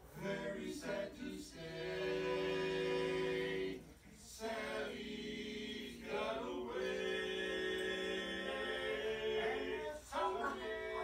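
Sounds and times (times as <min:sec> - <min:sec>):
male vocal quartet singing: 0:00.1 - 0:11.0.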